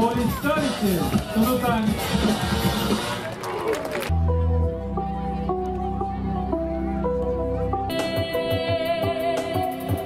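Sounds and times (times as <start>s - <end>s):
dance music with singing and drums: 0.0s - 3.2s.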